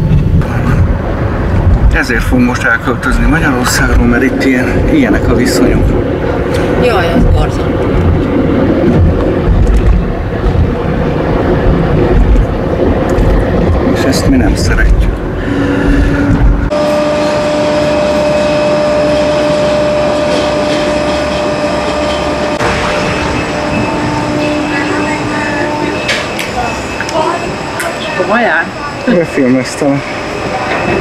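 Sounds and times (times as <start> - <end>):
car cabin road rumble: 0.0 - 16.7
steady hum with whine: 0.0 - 31.0.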